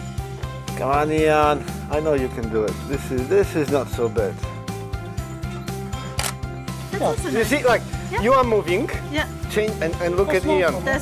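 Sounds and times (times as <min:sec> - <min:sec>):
camera shutter click: 0:06.1 - 0:06.5.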